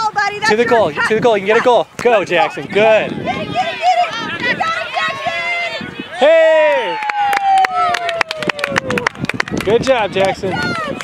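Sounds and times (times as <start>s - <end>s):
fast hand clapping: 7.0s - 11.0s.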